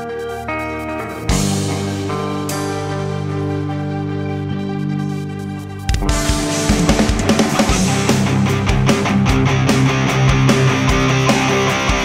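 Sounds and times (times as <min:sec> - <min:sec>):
distorted electric guitars: 0:00.0 - 0:12.0
drum hits: 0:05.9 - 0:08.9.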